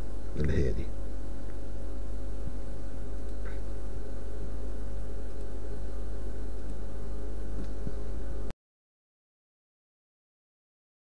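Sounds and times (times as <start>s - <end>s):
steady electrical hum: 0.0s - 8.6s.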